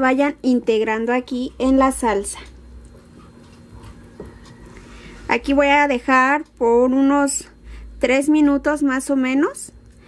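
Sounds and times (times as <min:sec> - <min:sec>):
wooden spoon stirring thick sauce: 0:02.8 - 0:04.8.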